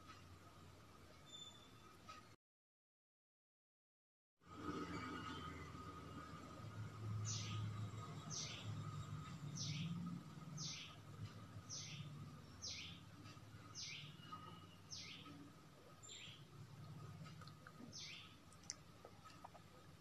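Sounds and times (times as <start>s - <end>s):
bird chirping: 1.2s - 2.0s, 7.2s - 16.6s, 17.6s - 19.8s
low steady hum: 4.8s - 20.0s.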